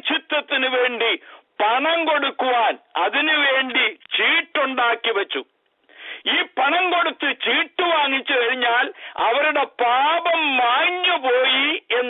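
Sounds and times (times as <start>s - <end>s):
man talking on telephone: 0.0s - 5.6s, 6.2s - 12.0s.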